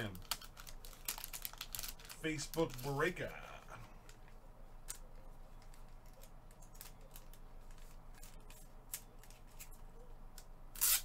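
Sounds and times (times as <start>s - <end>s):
plastic bag crinkling: 0.0s - 4.2s.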